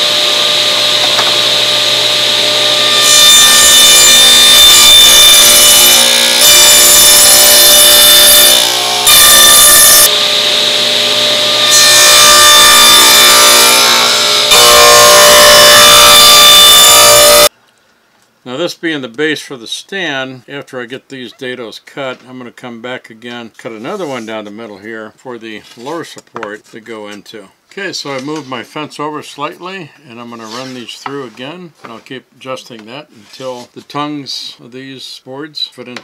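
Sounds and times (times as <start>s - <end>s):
table saw cutting wood: 0.0s - 17.5s.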